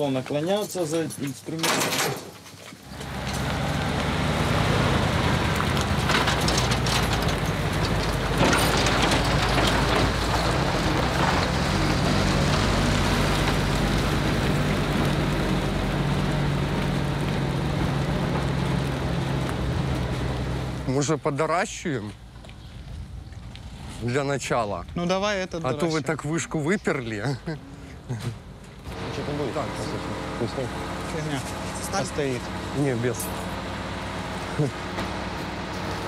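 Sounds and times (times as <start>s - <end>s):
road noise: 0.0s - 36.0s
truck engine running: 2.8s - 21.2s, 27.7s - 36.0s.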